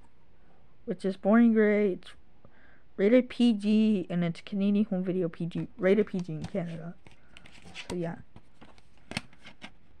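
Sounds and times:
objects handled with clicks and rustles: 5.5s - 9.9s.

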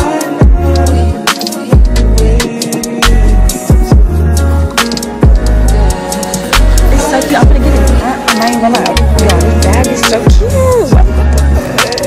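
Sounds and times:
deep sustained bass notes: 6.6s - 8.1s.

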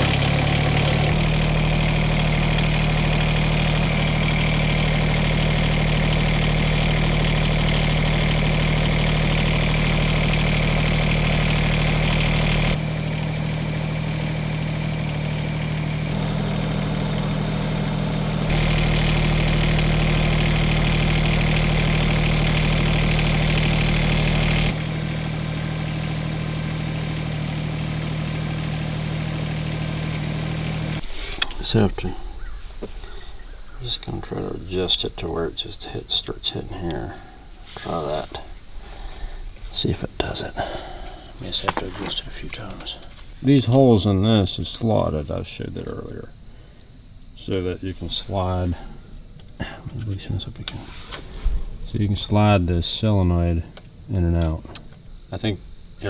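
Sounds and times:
diesel tractor engine idling: 0.0s - 56.0s.

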